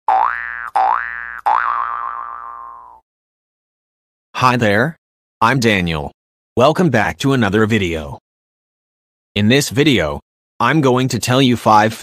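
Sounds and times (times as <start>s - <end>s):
cartoon boing sound effect: 0.1s - 3.0s.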